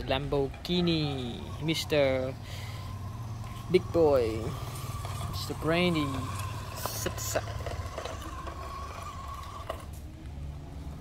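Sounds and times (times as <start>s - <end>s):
toy car electric motor whining: 0.7s - 10.0s.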